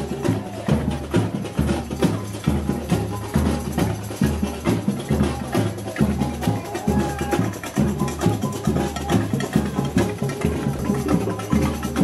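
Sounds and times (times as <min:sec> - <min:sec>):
bass drums beating: 0:00.0 - 0:12.0
fast percussion: 0:00.0 - 0:12.0.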